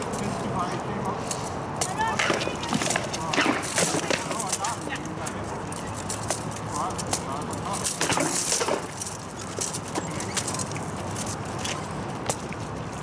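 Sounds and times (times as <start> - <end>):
swords clanking on shields: 6.1 - 10.4.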